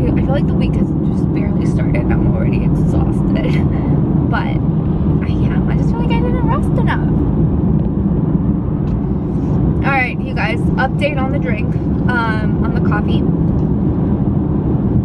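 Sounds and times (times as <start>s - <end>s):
woman speaking: 0.0s - 4.6s, 5.2s - 7.2s, 9.8s - 13.2s
car road and engine rumble: 0.0s - 15.0s.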